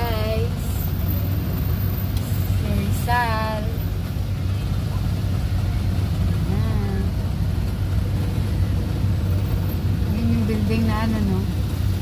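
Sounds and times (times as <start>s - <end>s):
cars passing close by: 0.0s - 12.0s
road traffic rumble: 0.0s - 12.0s.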